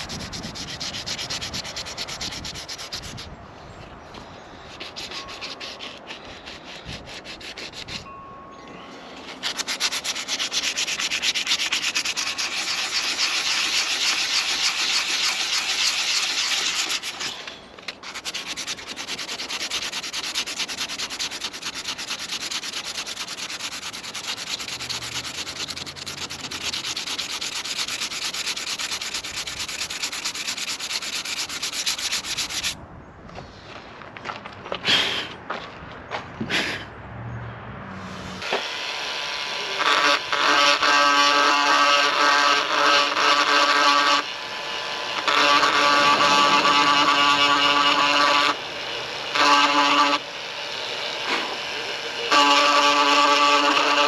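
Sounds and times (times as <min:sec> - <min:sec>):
sandpaper scrubbing boat hull: 0:00.0 - 0:03.4, 0:04.1 - 0:08.1, 0:09.1 - 0:32.8, 0:39.5 - 0:44.3, 0:45.1 - 0:48.6, 0:49.3 - 0:50.2, 0:51.2 - 0:54.0.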